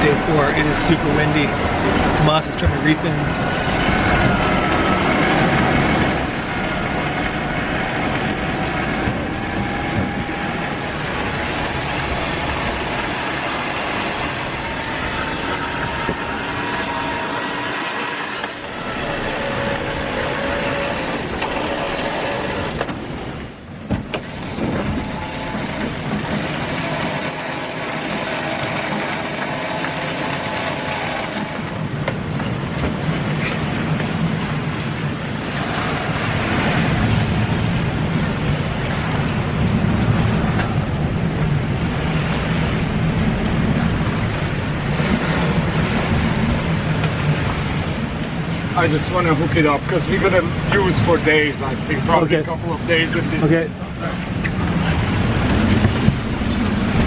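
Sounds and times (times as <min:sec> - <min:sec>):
thin whining tones: 0:00.0 - 0:23.3, 0:24.1 - 0:32.0
sea noise: 0:00.0 - 0:57.0
wind: 0:00.0 - 0:57.0.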